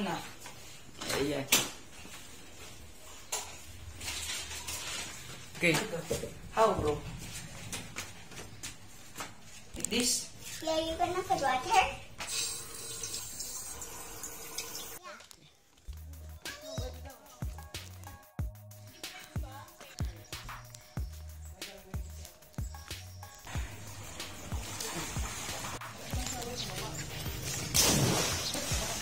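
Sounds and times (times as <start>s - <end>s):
tap water running into sink: 12.3s - 15.0s
music with bass and drums: 15.9s - 29.0s
loud splash into pool: 27.7s - 29.0s.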